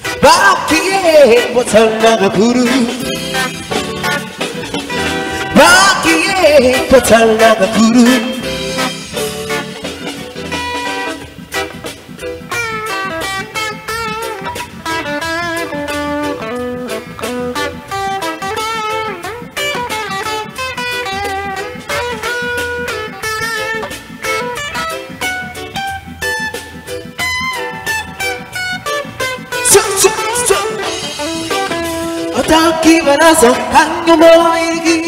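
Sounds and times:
bass: 0.0s - 35.0s
electric guitar melody: 0.0s - 35.0s
keyboard: 0.0s - 35.0s
steady drum beat: 2.4s - 34.3s.

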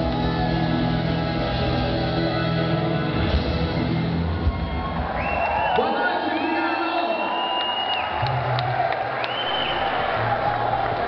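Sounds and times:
audience cheering and applauding: 3.0s - 11.0s
long whistles: 4.6s - 8.2s, 9.2s - 10.0s.

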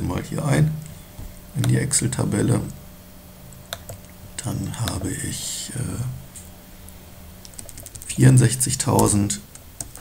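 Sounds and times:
computer keyboard taps: 7.4s - 8.1s.

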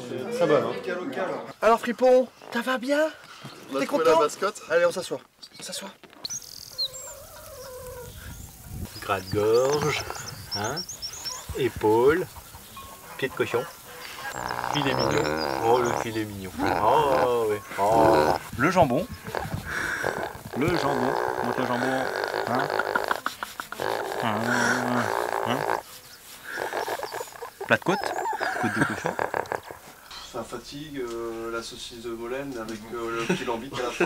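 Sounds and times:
small birds chirping: 2.2s - 31.0s
pig grunting: 14.0s - 30.0s.

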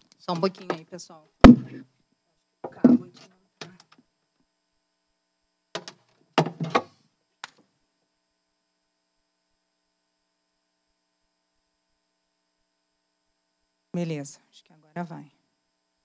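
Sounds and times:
faint electrical mains hum: 0.0s - 16.0s.

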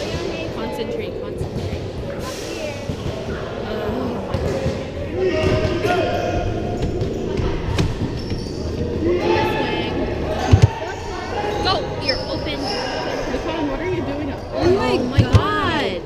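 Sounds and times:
voices calling out: 2.2s - 16.0s.

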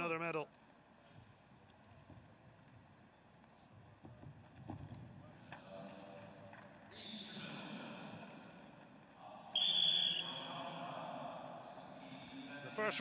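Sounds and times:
faint hall noise: 0.0s - 13.0s
shrill whistle blast: 9.5s - 10.5s.

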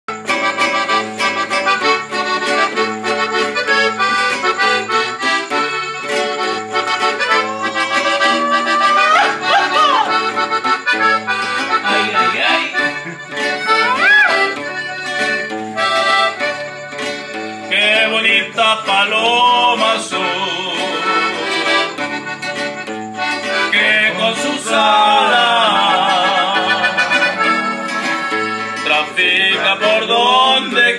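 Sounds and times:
accordion playing lively melody: 0.0s - 30.9s
swooping high sounds: 7.0s - 10.4s.

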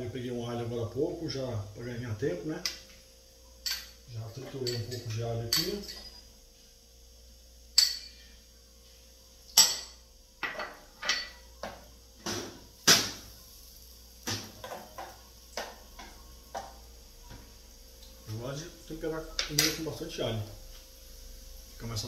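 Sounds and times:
metal spoon clinking on saucepan: 3.6s - 6.3s, 7.8s - 8.2s.

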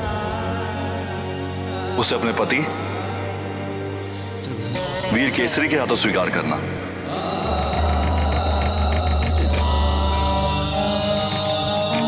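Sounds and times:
dramatic score music: 0.0s - 12.0s.

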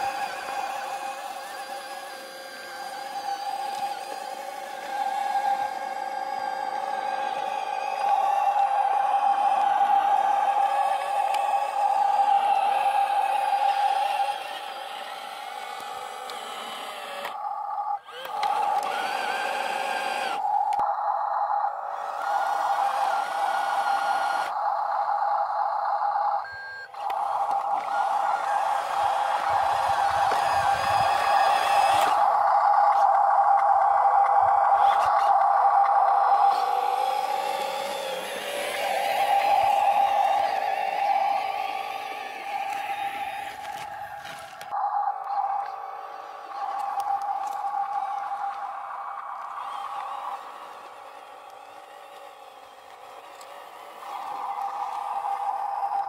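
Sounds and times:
electric motor high whine: 0.0s - 56.0s.

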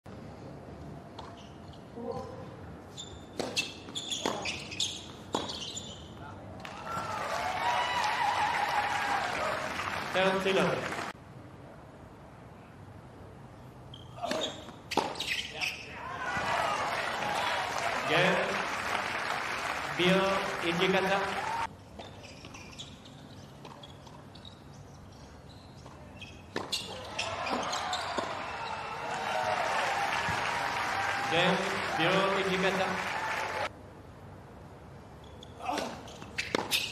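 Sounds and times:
shoe squeaks on court: 2.9s - 6.2s, 13.9s - 15.9s, 22.0s - 28.4s, 35.2s - 36.9s
crowd noise: 16.0s - 21.7s, 27.0s - 33.7s
racket hitting tennis ball: 35.7s - 36.9s.

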